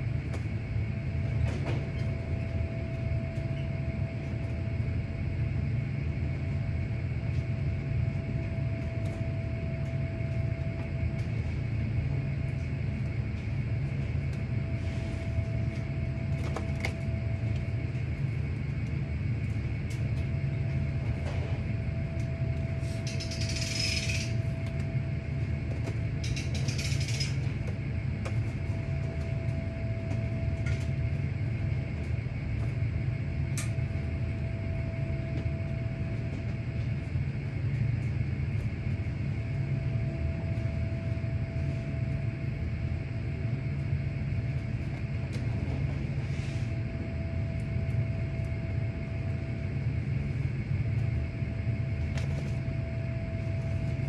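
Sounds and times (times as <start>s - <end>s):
low mechanical hum: 0.0s - 54.0s.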